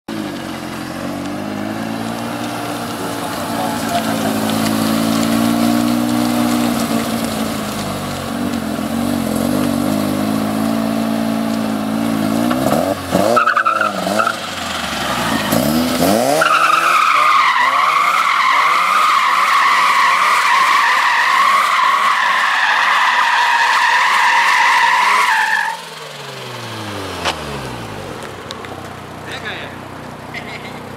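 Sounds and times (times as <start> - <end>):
rotary engine revving: 0.3 - 28.2
tyres squealing: 2.9 - 5.5, 13.2 - 25.9.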